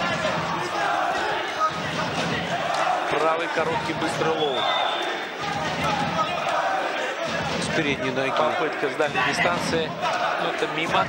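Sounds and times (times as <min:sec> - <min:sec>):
arena crowd voices and shouting: 0:00.0 - 0:11.0.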